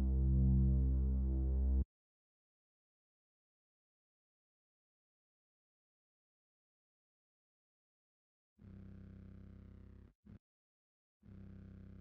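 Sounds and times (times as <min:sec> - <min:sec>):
held low synth bass note: 0:00.0 - 0:01.8.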